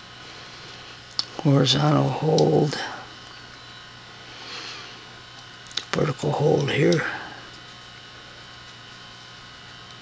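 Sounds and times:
television electrical hum and buzz: 0:00.0 - 0:10.0.

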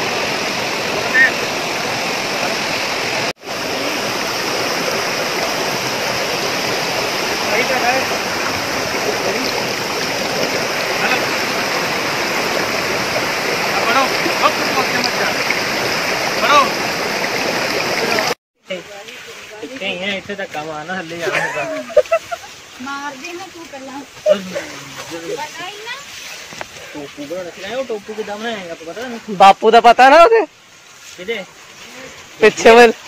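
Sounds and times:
waterfall: 0:00.0 - 0:33.0.

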